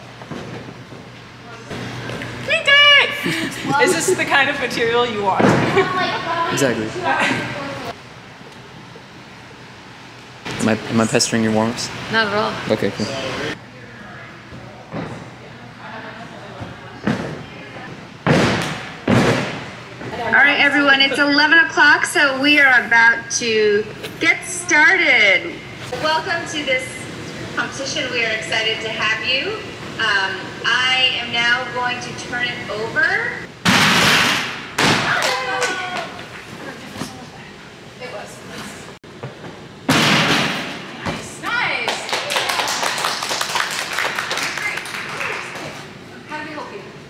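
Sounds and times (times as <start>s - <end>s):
people cheering: 35.0s - 36.2s, 41.6s - 45.7s
people clapping: 35.1s - 36.1s, 41.8s - 45.9s.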